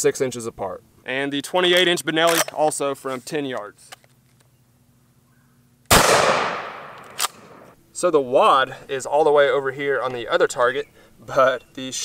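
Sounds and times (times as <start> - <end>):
shotgun shot echoing: 5.9 - 7.7.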